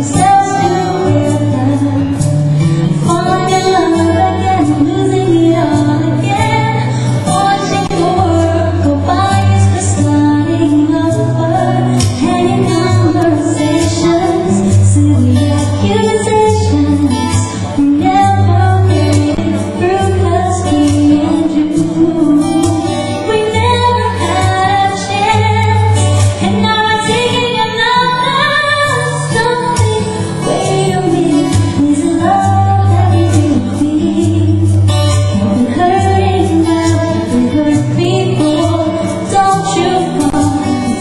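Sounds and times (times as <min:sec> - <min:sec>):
band accompaniment with bass: 0:00.0 - 0:41.0
woman singing pop ballad: 0:00.0 - 0:41.0.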